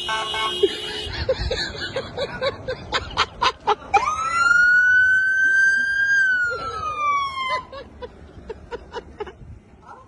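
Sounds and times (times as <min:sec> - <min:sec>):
police siren wailing: 0:03.9 - 0:07.8.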